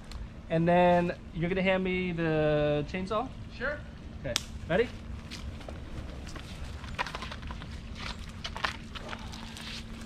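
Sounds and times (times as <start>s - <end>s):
shoes scraping tree bark: 5.2s - 10.0s.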